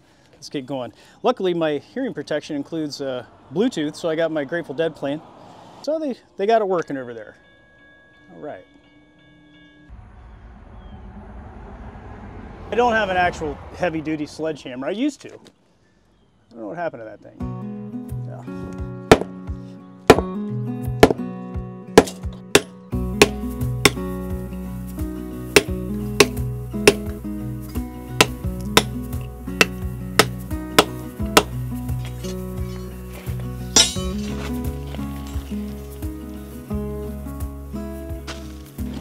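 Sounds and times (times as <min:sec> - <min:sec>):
background music with beat: 0:18.7 - 0:39.0
hammer striking chisel: 0:19.1 - 0:19.3, 0:20.1 - 0:20.3, 0:22.0 - 0:24.0, 0:25.6 - 0:27.2, 0:28.2 - 0:29.0, 0:29.6 - 0:31.6.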